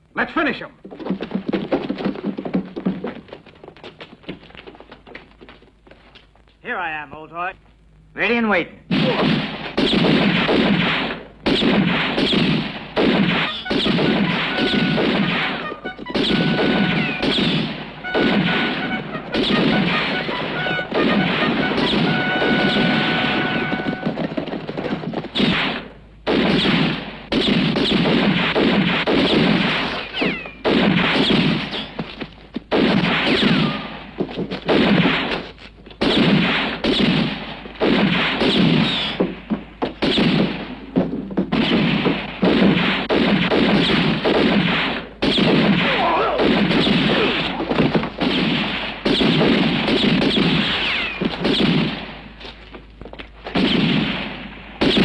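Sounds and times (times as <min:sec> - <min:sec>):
rapid revolver shots: 0:08.9 - 0:32.0, 0:32.7 - 0:52.4, 0:53.5 - 0:55.0.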